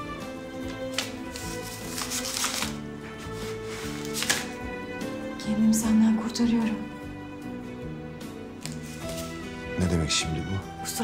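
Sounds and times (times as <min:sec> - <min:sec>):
background music: 0:00.0 - 0:11.0
paper tearing: 0:00.7 - 0:04.6.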